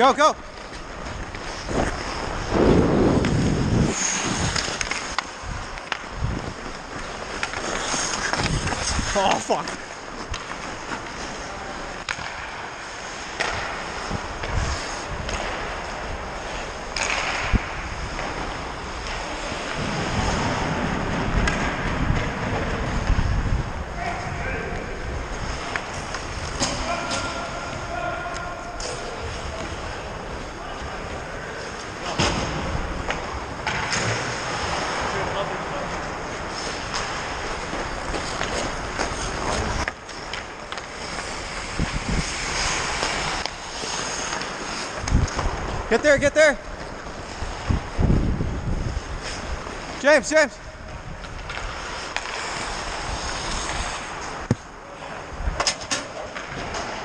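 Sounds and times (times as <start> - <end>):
skate blades scraping ice: 0.0 - 57.0.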